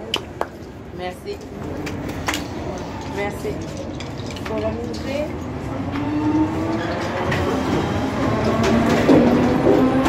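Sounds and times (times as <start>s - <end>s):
train carriage rumble: 0.0s - 10.0s
train whine: 1.6s - 4.0s, 5.3s - 10.0s.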